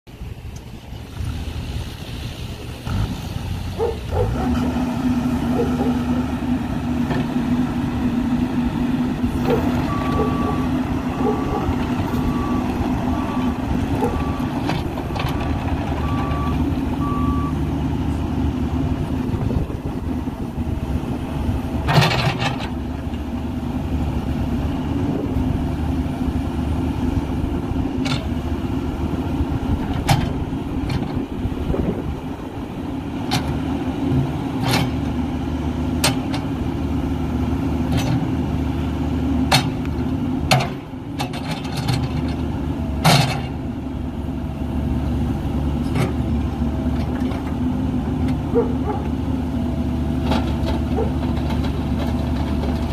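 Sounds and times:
excavator diesel engine running: 0:00.1 - 0:52.9
travel alarm beeping: 0:09.8 - 0:14.5.

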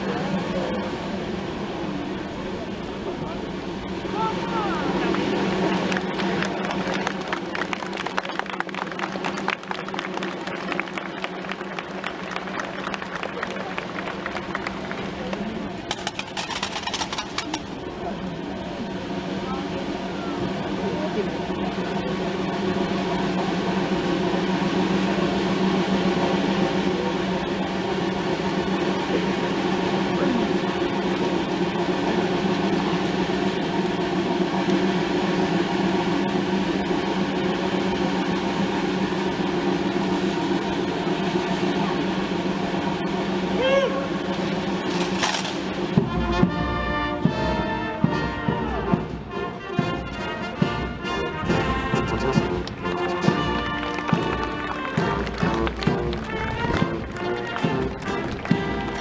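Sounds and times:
murmur of crowd voices: 0:00.0 - 0:59.0
brass band playing a march: 0:22.5 - 0:59.0.

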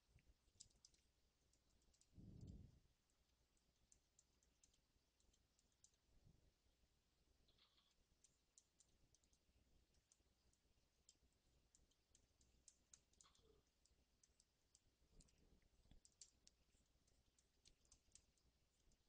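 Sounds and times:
small clicks of computer mouse: 0:00.1 - 0:06.1, 0:07.4 - 0:19.0.

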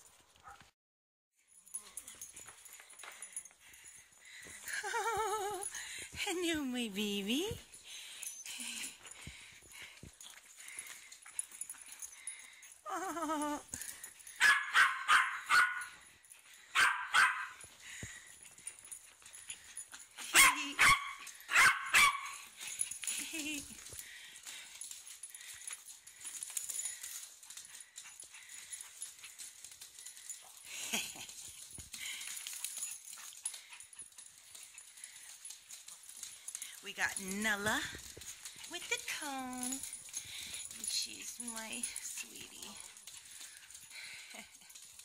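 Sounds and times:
small dog yapping: 0:14.4 - 0:15.8, 0:16.8 - 0:17.6, 0:20.4 - 0:22.4.

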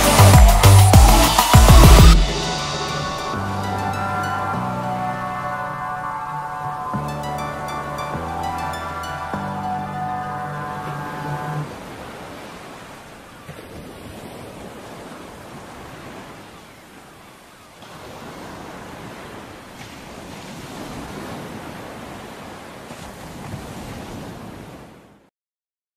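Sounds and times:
ocean waves washing in: 0:00.0 - 0:25.3.

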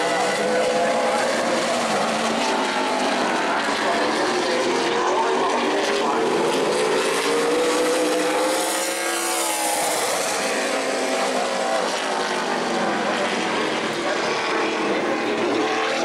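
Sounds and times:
race car engine passing: 0:00.0 - 0:16.0.

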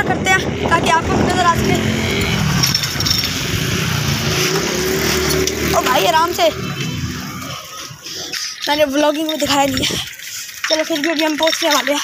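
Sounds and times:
boy talking: 0:00.0 - 0:02.4, 0:05.6 - 0:06.6, 0:08.6 - 0:12.0
moving air: 0:00.0 - 0:08.1
street traffic rumble: 0:00.0 - 0:12.0.

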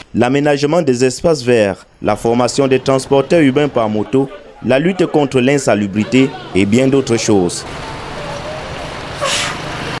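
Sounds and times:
street traffic noise: 0:00.0 - 0:10.0
brief rush of noise: 0:09.1 - 0:09.8.

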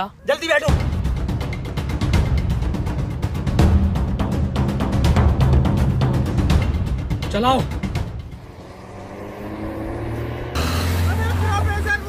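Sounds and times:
car engine accelerating: 0:08.0 - 0:12.0.

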